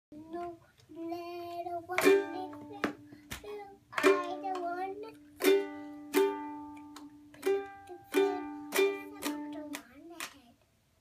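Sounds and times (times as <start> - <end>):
toddler singing: 0.1 - 5.8, 7.3 - 10.6.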